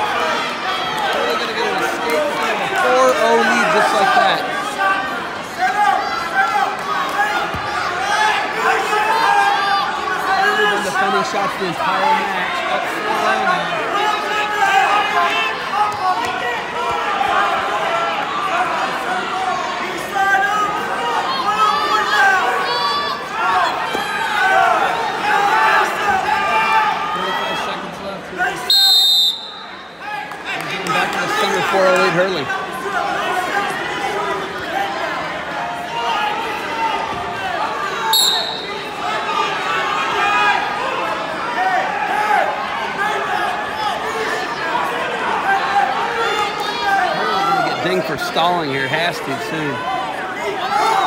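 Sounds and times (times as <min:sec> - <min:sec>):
crowd voices and shouting: 0:00.0 - 0:51.0
spectators calling out: 0:35.8 - 0:51.0.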